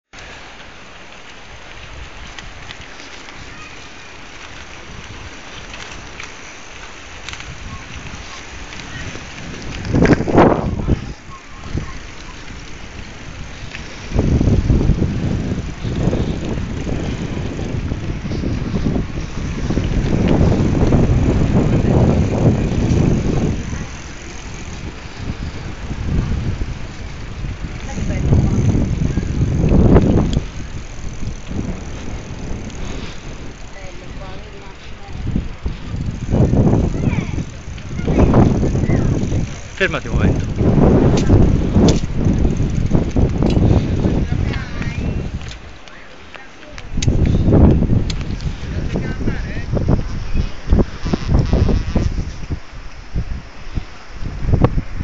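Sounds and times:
wind buffeting microphone: 1.3s - 55.0s
rush of moving air: 7.3s - 45.8s.

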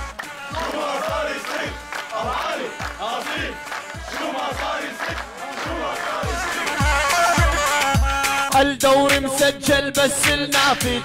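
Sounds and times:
male voices chanting: 0.5s - 11.0s.

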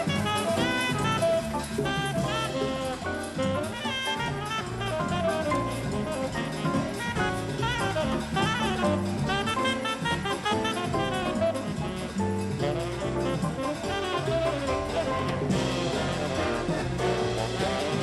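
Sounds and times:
big band rhythm section: 0.0s - 18.0s
brass section playing: 0.0s - 18.0s
tenor saxophone solo: 0.0s - 18.0s.

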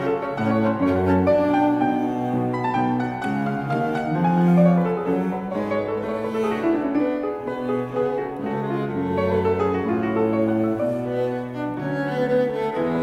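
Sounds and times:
cello low sustained notes: 0.0s - 13.0s.

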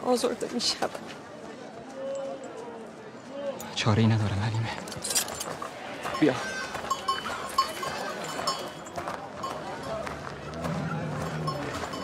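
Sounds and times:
market background: 0.0s - 12.0s.

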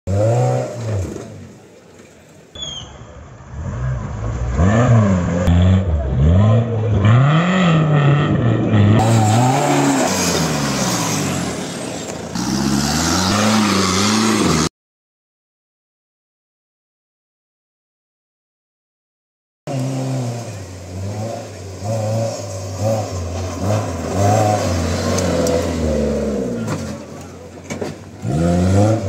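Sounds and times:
jeep engines revving: 0.1s - 14.7s, 19.7s - 29.0s.

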